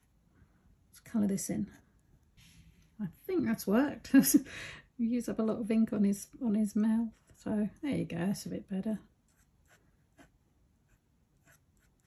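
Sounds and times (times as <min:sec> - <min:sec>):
pen nib scratching on paper: 0:10.9 - 0:12.0.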